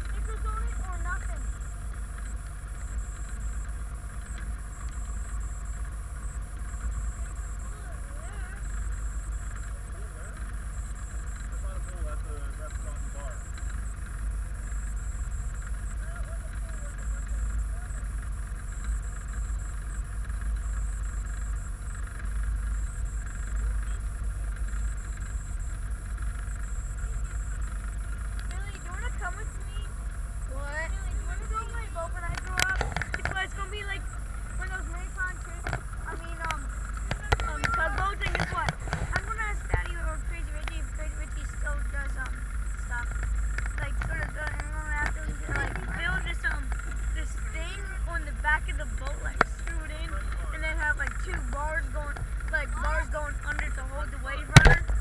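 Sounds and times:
faint voices: 0.0s - 2.3s, 6.0s - 14.2s, 15.6s - 18.4s, 27.0s - 55.0s
motorboat engine rumble: 0.0s - 55.0s.

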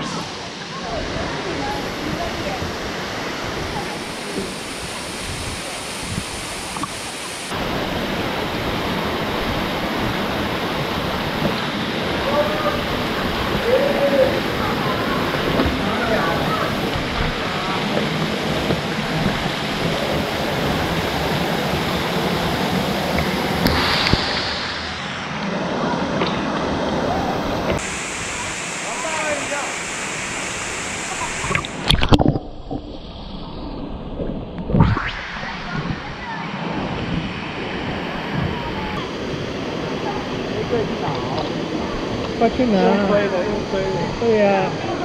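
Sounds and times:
waterfall rushing: 0.0s - 32.3s, 35.0s - 45.0s
water splashing: 0.0s - 42.7s.

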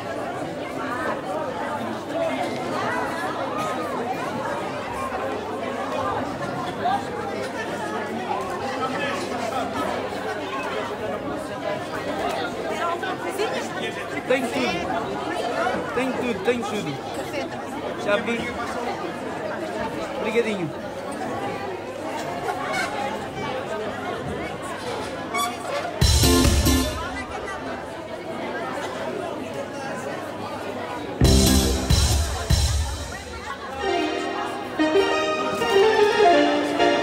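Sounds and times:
crowd chattering: 0.0s - 37.0s.

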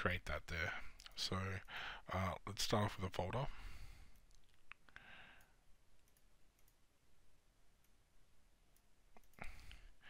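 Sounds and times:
soft breath hiss: 0.2s - 10.0s
computer mouse clicks: 5.4s - 6.8s.

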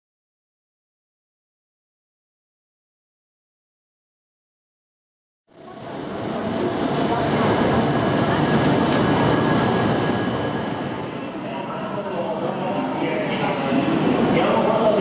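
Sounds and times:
train humming at platform: 5.5s - 15.0s
many people talking: 5.6s - 15.0s.

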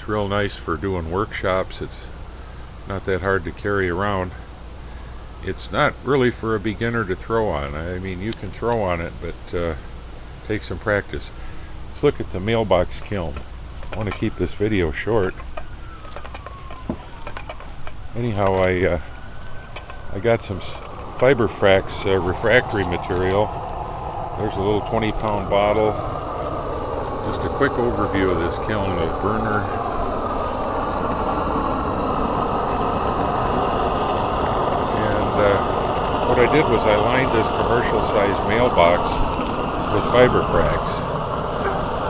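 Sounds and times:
gas burner rushing: 0.0s - 42.0s
low rumble: 19.1s - 42.0s.

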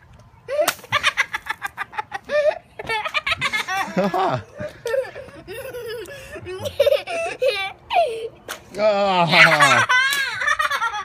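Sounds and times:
high-pitched laughing and shrieking: 9.2s - 11.0s.

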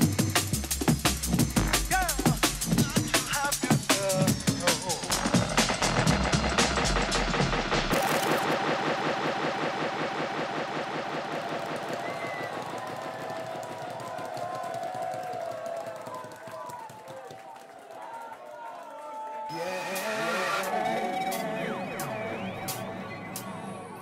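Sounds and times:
drum and bass music: 0.0s - 14.2s, 19.5s - 24.0s.

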